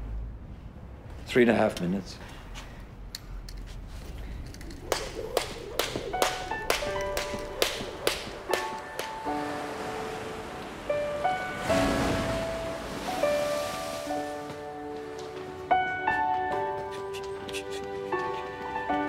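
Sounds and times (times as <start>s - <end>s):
film score music: 4.0s - 19.0s.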